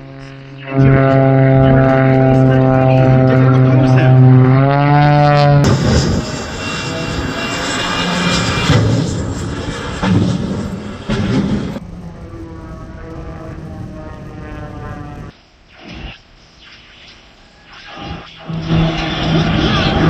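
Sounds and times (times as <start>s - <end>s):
propeller plane engine droning: 0.0s - 15.4s, 17.4s - 20.0s
jet engine roaring: 0.0s - 20.0s.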